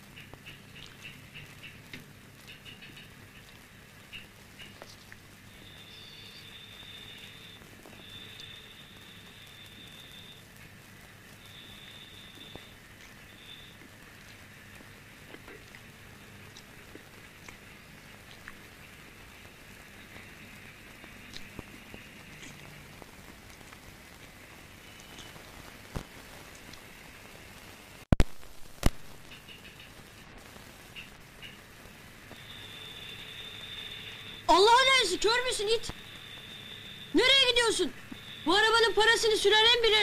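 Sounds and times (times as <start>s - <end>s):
faint steady background noise: 0.0s - 40.0s.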